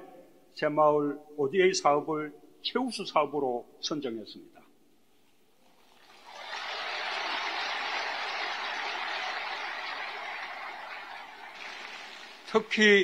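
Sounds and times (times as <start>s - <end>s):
audience applauding: 5.9s - 13.0s.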